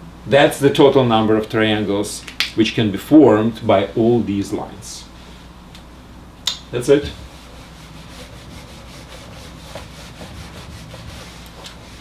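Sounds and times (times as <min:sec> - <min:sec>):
whiteboard being wiped: 0:06.8 - 0:12.0.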